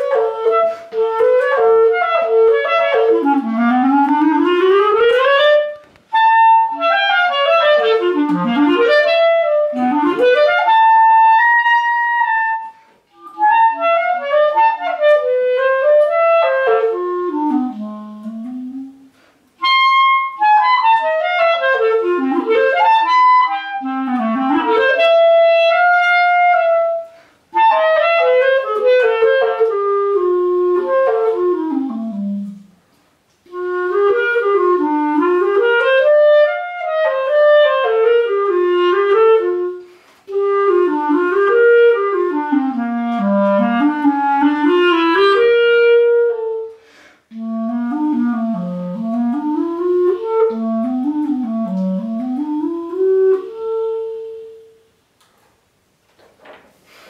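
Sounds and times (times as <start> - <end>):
solo clarinet playing: 0.0 - 55.0.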